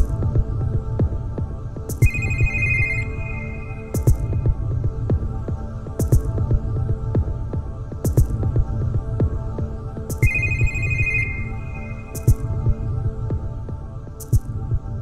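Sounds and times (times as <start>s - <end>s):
low pulsing beat: 0.0s - 15.0s
sustained bell-like tone: 2.0s - 4.3s, 10.3s - 12.4s.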